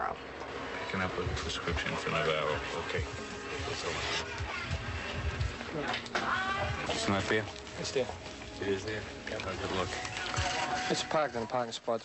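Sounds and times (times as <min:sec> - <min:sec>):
people talking: 0:00.9 - 0:04.2.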